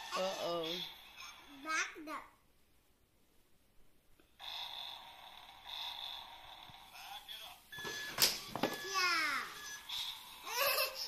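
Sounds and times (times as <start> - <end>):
toy electric motor whirring: 0.0 - 1.7, 4.4 - 11.0
child's voice: 1.4 - 2.4, 8.8 - 9.6.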